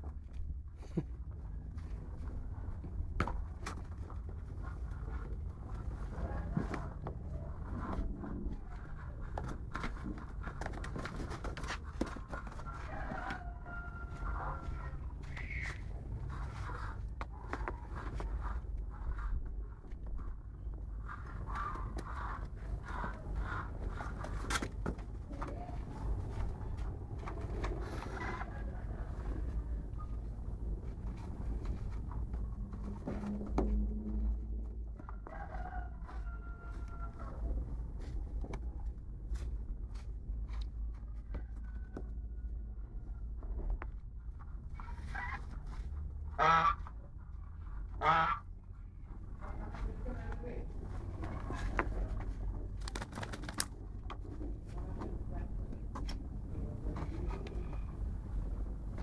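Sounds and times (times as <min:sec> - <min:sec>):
steady low rumble: 0:13.5 - 0:41.3, 0:42.1 - 0:59.0
goose honking: 0:46.3 - 0:47.0, 0:48.0 - 0:48.5.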